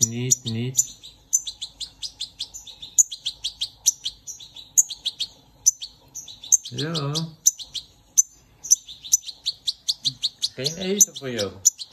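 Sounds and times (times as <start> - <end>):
fledgling songbird chirping: 0.0 - 11.9.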